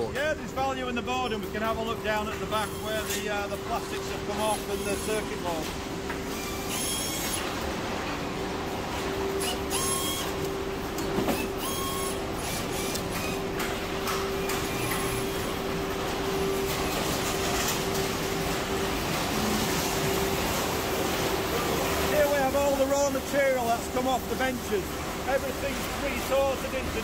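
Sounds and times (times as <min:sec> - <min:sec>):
steady machine hum: 0:00.0 - 0:27.0.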